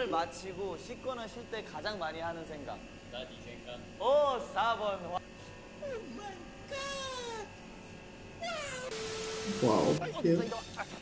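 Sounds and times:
high-pitched falling cries: 8.4 - 9.6.

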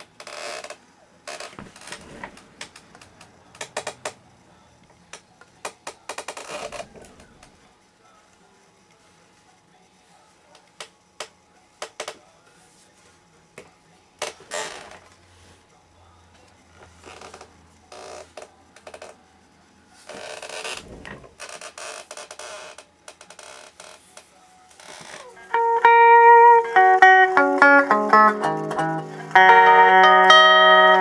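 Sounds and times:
guitar handling clicks and knocks: 25.3 - 31.0
picked guitar notes: 25.3 - 31.0.

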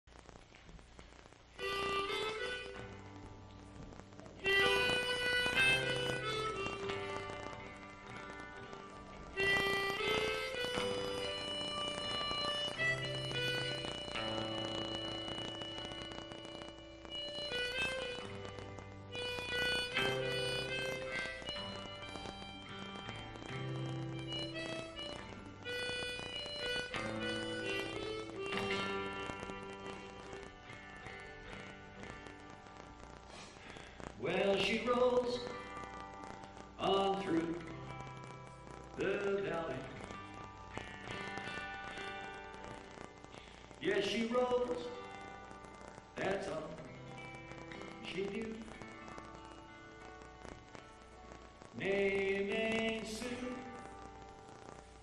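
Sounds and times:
live folk music: 1.5 - 55.0.

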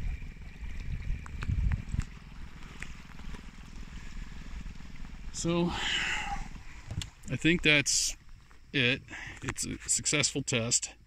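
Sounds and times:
trolling motor running: 0.0 - 11.0.

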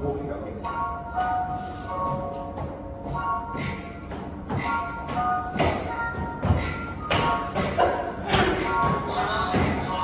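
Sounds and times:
pop dance music: 3.1 - 10.0.

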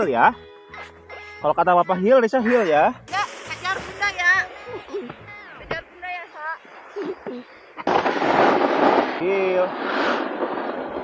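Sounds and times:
snowboards scraping over snow: 6.1 - 11.0.

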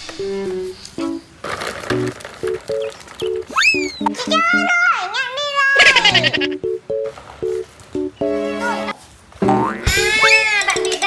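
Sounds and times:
rising whistle glide: 3.5 - 4.0
light background music: 5.8 - 11.0
springy cartoon boing: 9.4 - 10.6.

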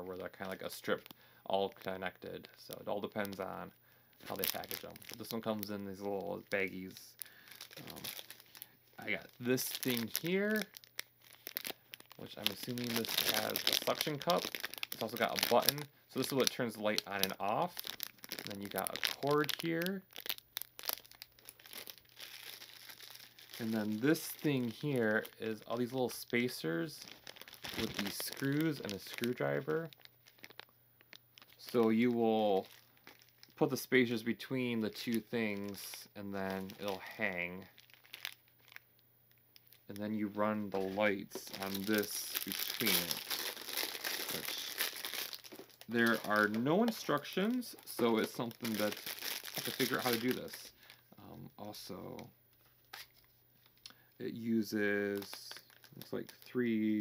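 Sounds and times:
plastic bag crinkling: 2.8 - 57.0.

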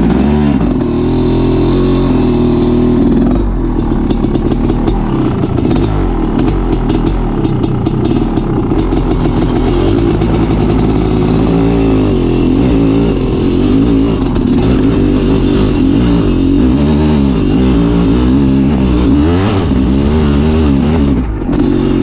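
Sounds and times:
motorcycle engine revving: 0.0 - 22.0.

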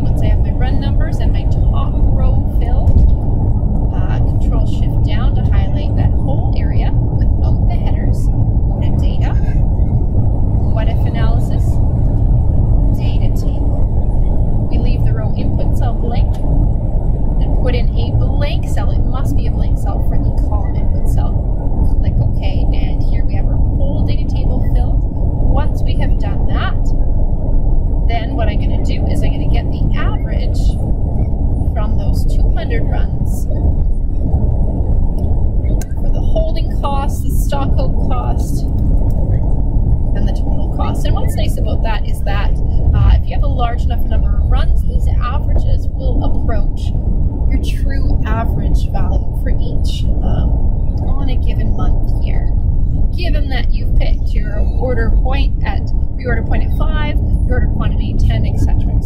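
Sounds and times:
low rumble: 0.0 - 59.0
muffled voices: 0.0 - 59.0.

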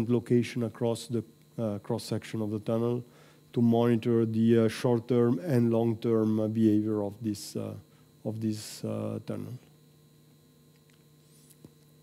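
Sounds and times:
faint steady hum: 0.0 - 12.0
small click: 10.7 - 11.9.

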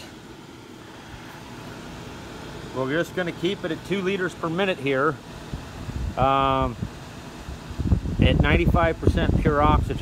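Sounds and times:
cooling fan whirring: 0.0 - 10.0
oxygen concentrator running: 0.0 - 10.0.

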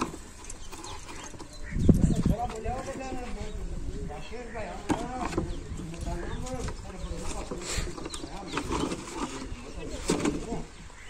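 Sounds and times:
man talking: 2.1 - 10.8.

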